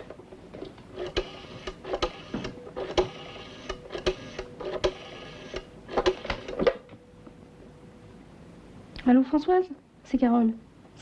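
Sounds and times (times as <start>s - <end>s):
telephone dial clicking and whirring: 0.9s - 6.7s
faint steady tone: 6.8s - 8.9s.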